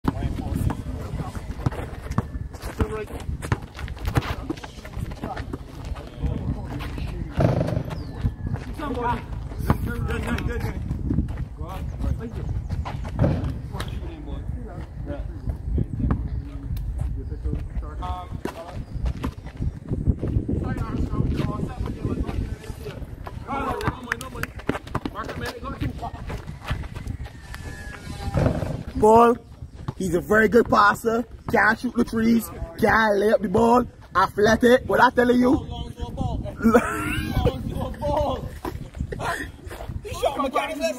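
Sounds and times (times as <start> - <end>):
basketball bouncing on concrete: 0.1 - 10.4, 23.1 - 26.0.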